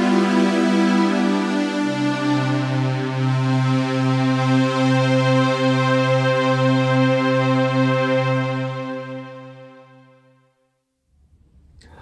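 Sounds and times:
overdriven synthesizer chord: 0.0 - 10.6.

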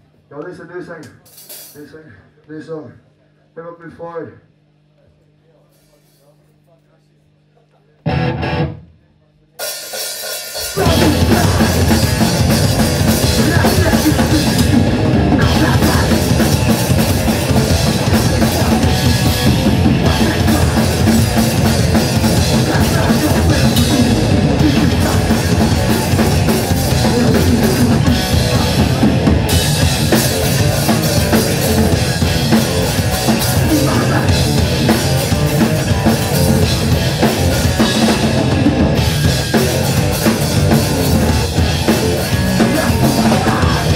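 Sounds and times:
punk band playing live: 8.1 - 8.8, 9.6 - 43.9.

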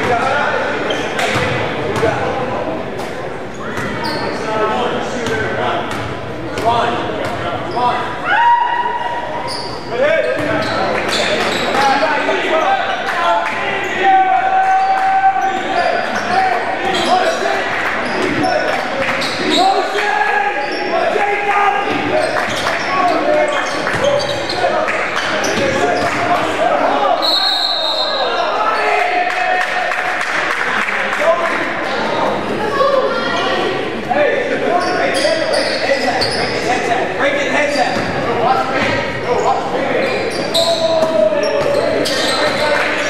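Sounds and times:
shoe squeaks on gym floor: 3.5 - 4.5, 9.4 - 12.0, 19.2 - 19.8, 23.4 - 26.2, 34.8 - 36.7, 39.3 - 42.8
people calling out: 40.3 - 42.8.

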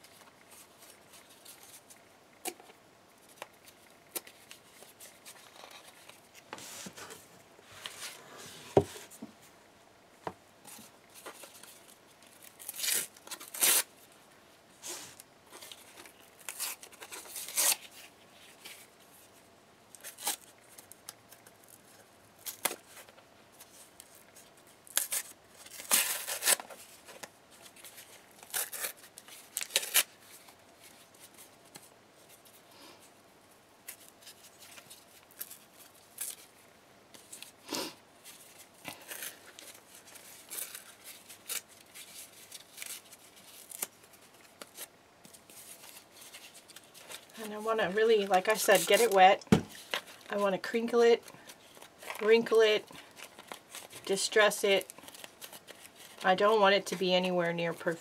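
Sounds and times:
cardboard tearing: 12.4 - 13.9, 15.6 - 18.9, 20.0 - 20.9, 24.8 - 27.2, 27.8 - 30.4, 53.0 - 54.1.

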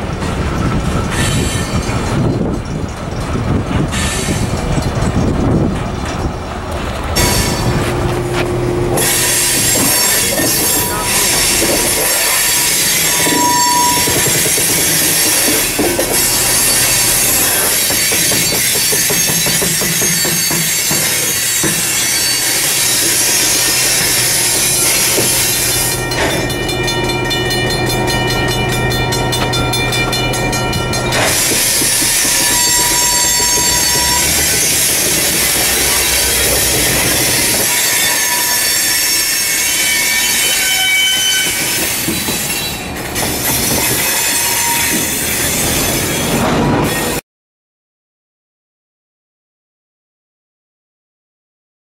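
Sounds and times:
train wheels squealing: 0.0 - 6.3, 9.0 - 47.2
rumble of rolling freight cars: 0.0 - 47.2.

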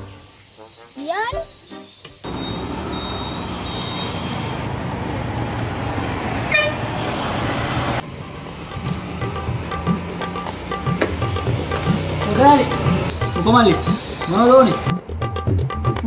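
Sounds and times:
street traffic: 2.2 - 15.9
motor scooter engine running: 2.3 - 5.3
vehicle horn toot: 2.3 - 7.4
background music: 8.2 - 16.0.

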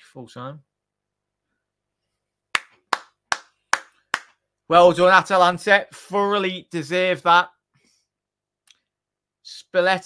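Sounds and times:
person clapping slowly: 2.6 - 4.3.

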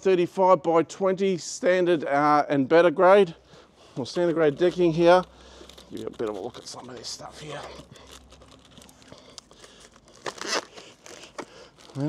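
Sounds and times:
plastic wrapping crinkling: 4.0 - 12.0.

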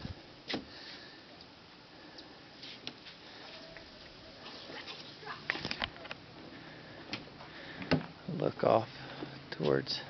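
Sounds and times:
background noise: 0.0 - 10.0
distant children's voices: 3.3 - 6.1.

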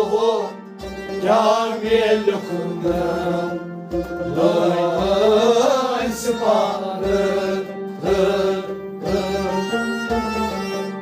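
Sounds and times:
men singing chant-like song: 0.0 - 0.6, 1.2 - 10.9
bowed fiddle: 0.0 - 11.0
harmonium drone: 0.0 - 11.0
low drum beat: 1.9 - 10.6.

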